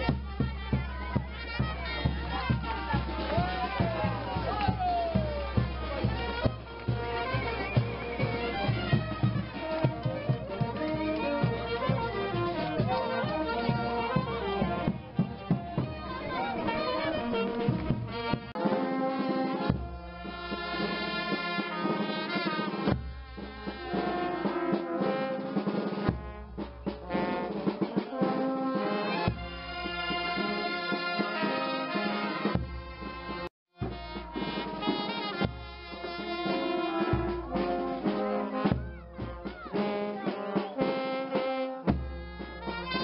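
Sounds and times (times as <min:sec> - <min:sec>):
beats: 0:00.0 - 0:31.5
trumpets and trombones melody: 0:00.0 - 0:43.0.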